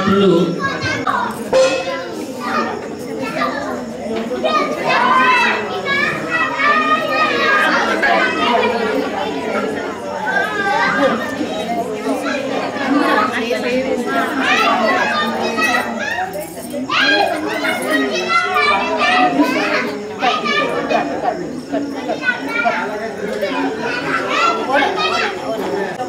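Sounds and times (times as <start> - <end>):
women and children chattering: 0.0 - 26.0.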